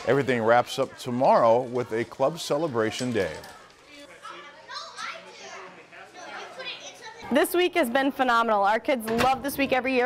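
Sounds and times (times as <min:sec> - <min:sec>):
children talking: 0:00.0 - 0:07.8.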